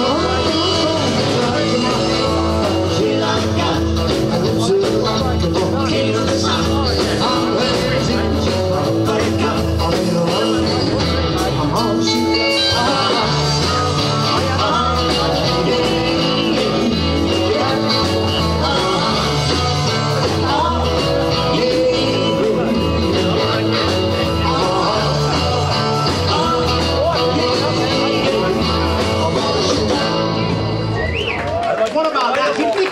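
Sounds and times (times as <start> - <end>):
rock band playing: 0.0 - 32.4.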